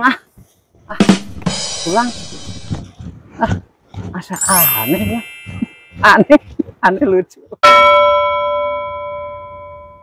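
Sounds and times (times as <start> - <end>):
struck bell chime: 4.4 - 6.2, 7.6 - 10.0.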